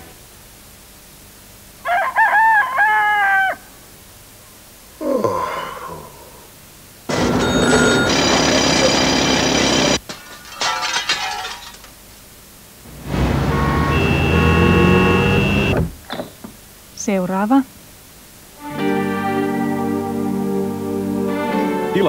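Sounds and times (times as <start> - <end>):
loud bell ringing: 7.1 - 10.0, 13.4 - 15.7
loud steady tone: 12.9 - 15.9.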